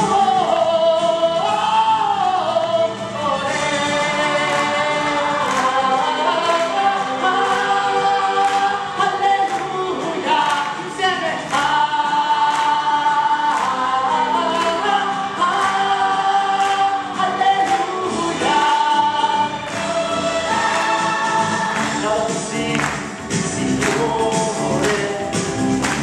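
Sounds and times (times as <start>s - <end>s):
choir singing: 0.0s - 26.0s
instrumental accompaniment with beat: 0.0s - 26.0s.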